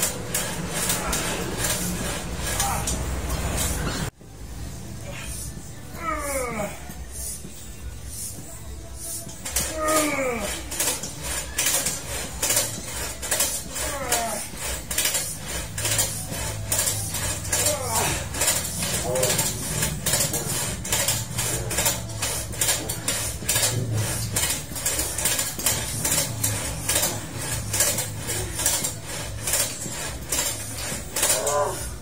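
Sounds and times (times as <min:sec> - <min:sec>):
exercise machine clicking and clattering: 0:00.0 - 0:04.2, 0:09.1 - 0:32.0.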